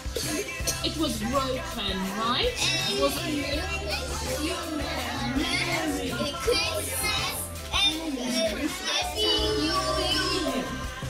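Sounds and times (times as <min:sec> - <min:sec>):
music with low bass line: 0:00.0 - 0:11.0
young girls' voices: 0:02.4 - 0:10.8.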